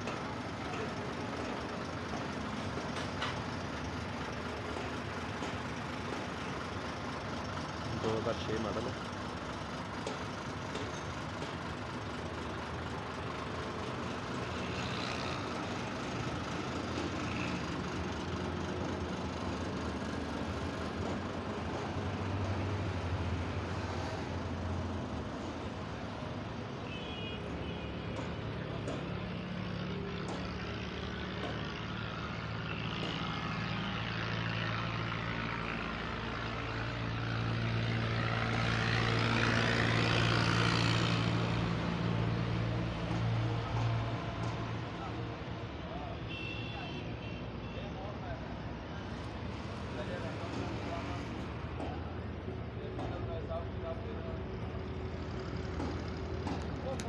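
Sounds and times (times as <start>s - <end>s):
diesel truck engine idling: 0.0s - 33.0s, 48.9s - 57.0s.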